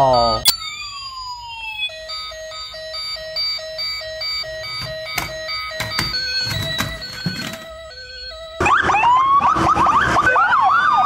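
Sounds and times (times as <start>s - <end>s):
toy siren beeping: 0.0s - 11.0s.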